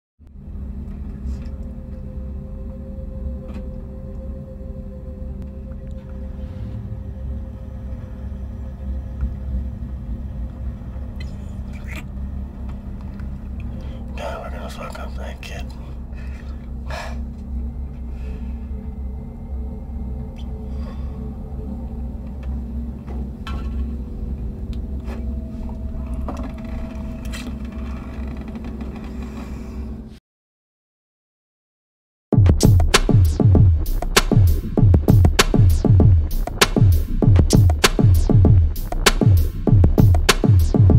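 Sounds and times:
faint even hum: 0.3 - 30.1
low rumble: 0.3 - 30.2, 32.4 - 40.9.

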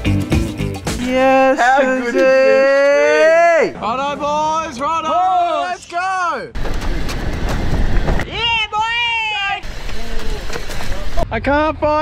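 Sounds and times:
man whooping: 1.0 - 3.8
man shouting: 1.0 - 6.5
van rolling on road: 6.6 - 8.3, 9.6 - 11.3.

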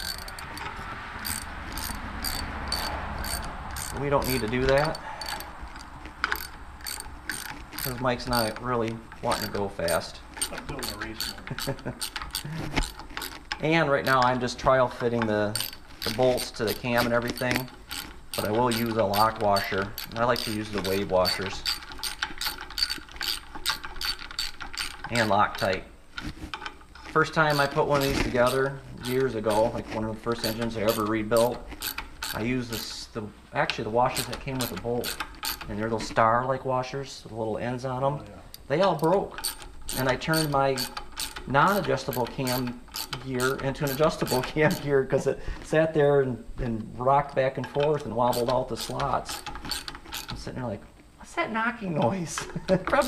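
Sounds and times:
socket ratchet clicking: 0.0 - 14.3, 15.2 - 25.8, 30.4 - 32.9, 34.2 - 35.7, 38.5 - 44.9, 47.9 - 50.4.

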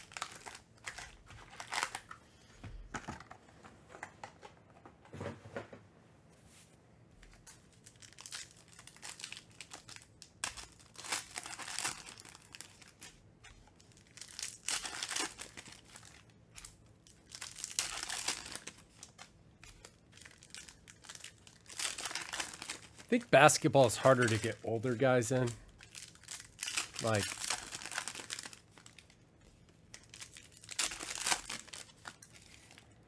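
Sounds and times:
foil wrapper tearing: 0.0 - 2.1, 7.8 - 29.2, 29.9 - 32.9.

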